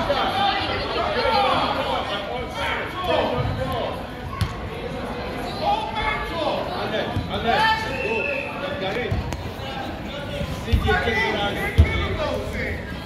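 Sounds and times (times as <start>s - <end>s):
people talking and calling out: 0.0s - 13.0s.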